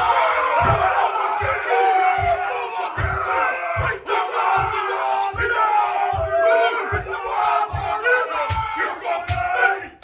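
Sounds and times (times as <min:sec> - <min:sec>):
men chanting shouts in unison: 0:00.0 - 0:10.0
stamping feet thumps: 0:00.0 - 0:10.0.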